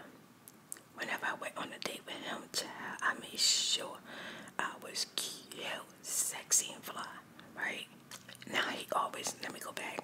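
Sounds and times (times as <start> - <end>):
woman whispering: 1.0 - 4.0, 4.6 - 10.0.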